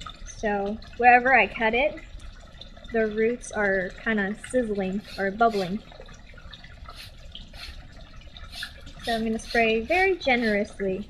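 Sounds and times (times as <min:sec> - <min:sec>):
peroxide fizzing and crackling: 0:00.0 - 0:11.0.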